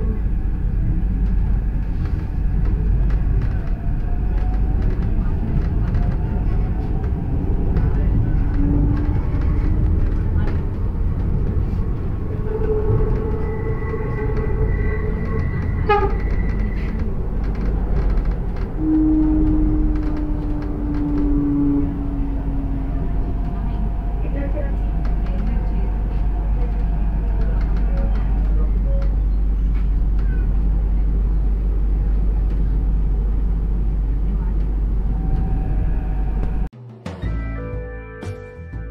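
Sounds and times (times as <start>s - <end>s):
train wheels rumbling on rails: 0.0s - 36.7s.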